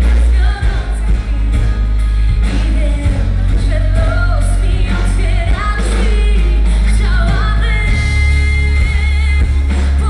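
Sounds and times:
heavy bass backing: 0.0s - 10.0s.

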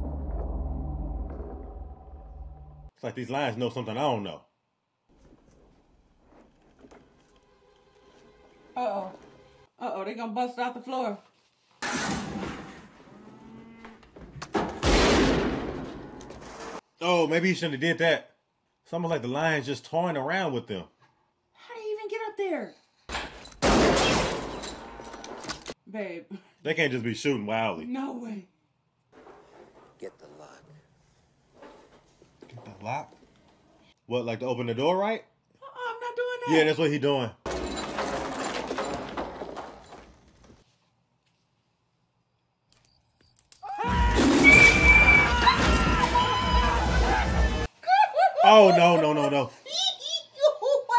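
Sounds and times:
loud crash: 11.8s - 13.1s, 14.6s - 16.8s, 43.9s - 47.4s
rifle shot with deep boom: 14.8s - 16.0s.

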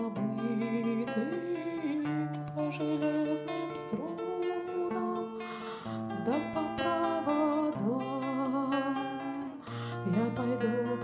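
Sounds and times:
acoustic guitar: 0.0s - 11.0s
woman singing wordlessly: 0.0s - 11.0s.

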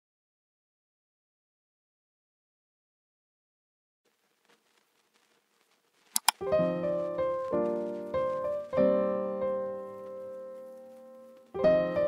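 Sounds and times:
sharp clicks: 5.0s - 6.6s
piano chords: 6.4s - 12.0s.

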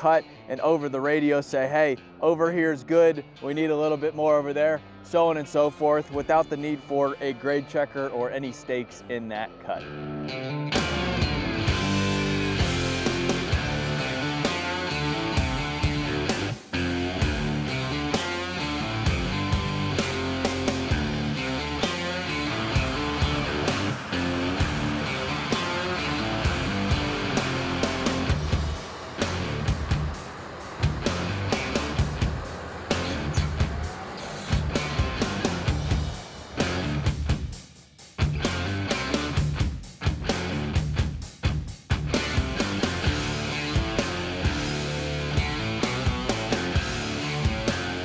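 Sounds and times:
rock music with guitar: 0.0s - 48.0s.

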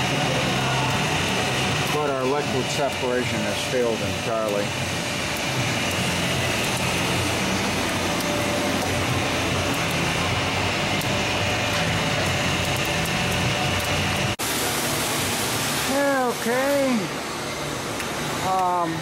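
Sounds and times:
screw press running: 0.0s - 15.0s
faint high motor whine: 0.0s - 19.0s.

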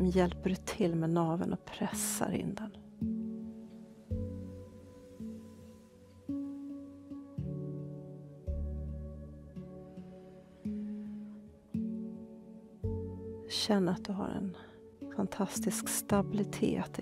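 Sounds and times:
plucked string instrument music: 2.8s - 17.0s.

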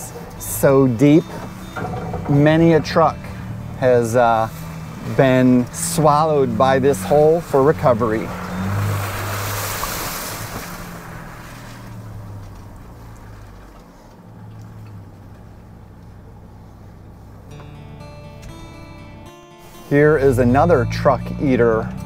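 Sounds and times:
music: 0.0s - 5.6s, 17.5s - 22.0s
tyres splashing through water: 0.0s - 16.4s
engine humming at low speed: 0.0s - 22.0s.

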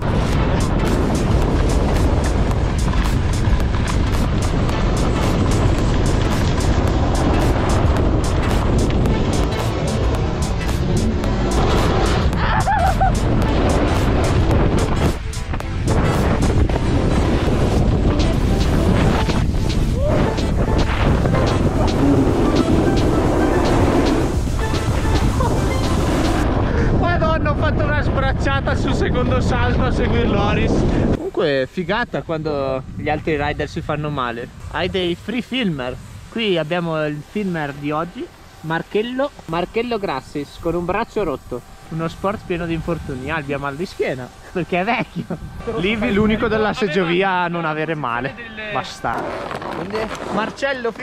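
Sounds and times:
background music: 0.0s - 26.5s.

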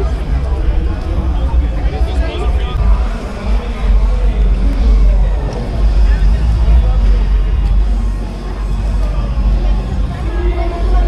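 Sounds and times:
faint voices of passers-by: 0.0s - 11.0s
low rumble: 0.0s - 11.0s.

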